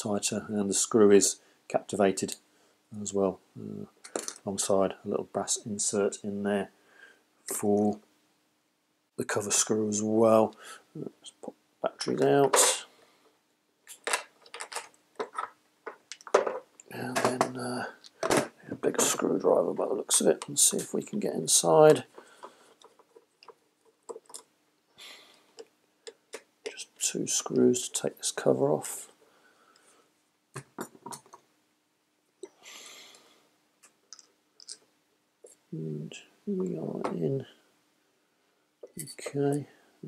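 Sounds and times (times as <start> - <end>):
batteries clicking and rattling: 13.9 - 17.3, 22.3 - 24.5.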